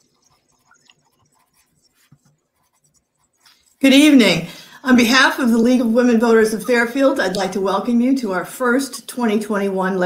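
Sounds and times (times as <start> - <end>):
woman speaking: 3.8 - 10.0.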